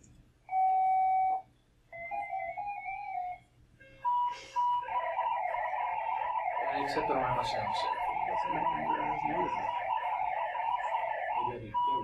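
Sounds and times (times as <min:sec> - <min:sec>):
dense many-tone data signal: 0:04.1 - 0:12.0
modem tones: 0:06.6 - 0:12.0.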